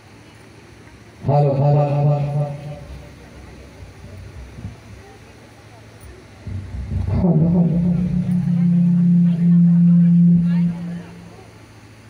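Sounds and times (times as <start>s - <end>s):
person holding low note: 6.4s - 11.7s.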